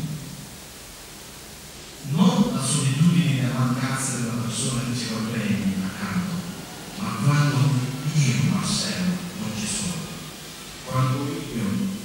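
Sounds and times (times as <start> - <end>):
steady recording hiss: 0.0 - 12.0
amplified voice: 2.0 - 12.0.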